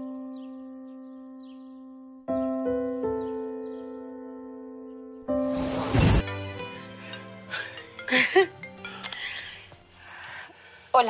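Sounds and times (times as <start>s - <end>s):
held music chord: 6.2s - 10.0s.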